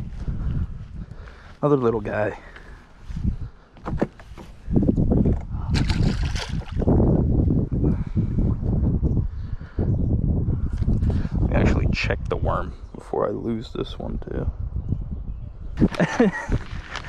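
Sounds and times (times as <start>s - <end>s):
water splashing and sloshing: 5.3s - 7.0s.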